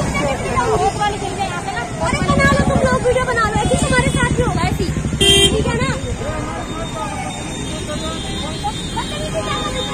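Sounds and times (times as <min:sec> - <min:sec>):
idling traffic rumble: 0:00.0 - 0:09.9
people talking: 0:00.0 - 0:09.9
vehicle horn honk: 0:05.2 - 0:05.8.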